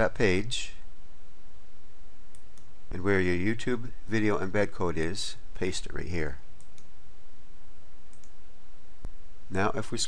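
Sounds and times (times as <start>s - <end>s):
room tone hum and hiss: 0.0s - 10.0s
faint computer mouse clicks: 6.6s - 6.9s, 8.1s - 8.4s.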